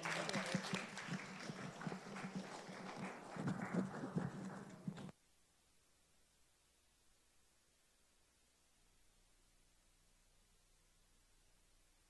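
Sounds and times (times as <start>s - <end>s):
congregation clapping: 0.0s - 5.1s.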